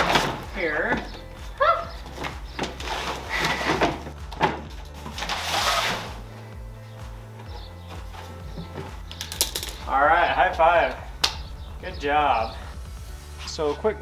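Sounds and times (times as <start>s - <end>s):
plastic cooler rustling and knocking: 0.0s - 1.2s, 2.0s - 6.2s, 7.4s - 9.9s
background music with bass line: 0.0s - 14.0s
sharp clicks: 10.9s - 11.6s.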